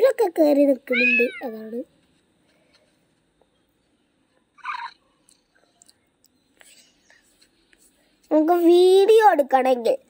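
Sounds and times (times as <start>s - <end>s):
cat meow: 1.0s - 1.5s.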